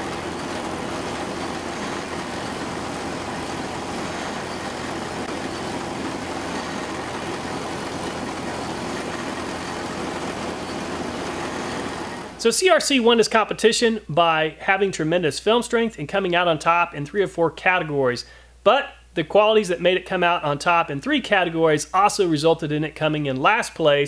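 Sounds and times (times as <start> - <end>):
tractor engine idling: 0.0 - 12.4.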